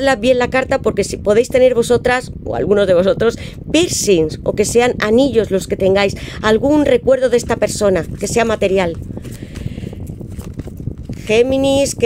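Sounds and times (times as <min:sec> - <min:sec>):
cards being shuffled: 0:08.0 - 0:11.6.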